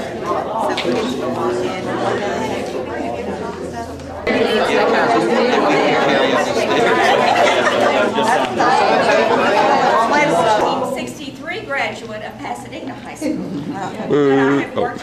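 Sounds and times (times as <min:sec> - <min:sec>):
group of people talking: 0:00.0 - 0:15.0.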